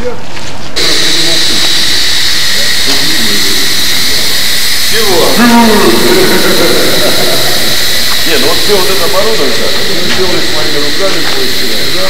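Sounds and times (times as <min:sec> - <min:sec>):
faint men's voices: 0:00.0 - 0:12.0
steady hiss with high whine: 0:00.8 - 0:12.0.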